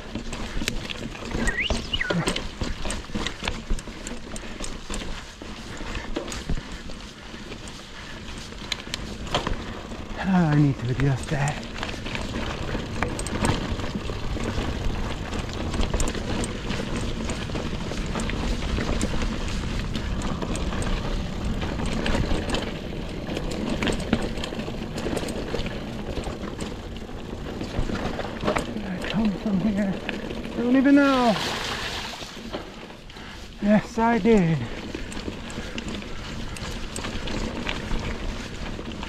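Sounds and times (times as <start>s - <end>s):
bike rattling and knocking: 0.0s - 39.0s
rider vocal sound: 1.2s - 2.5s
tyres rolling over stones: 8.4s - 39.0s.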